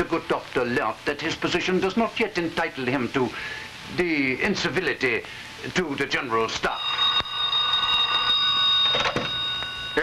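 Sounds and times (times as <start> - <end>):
old telephone bell ringing: 6.6 - 10.0
telephone receiver picked up: 8.8 - 9.4.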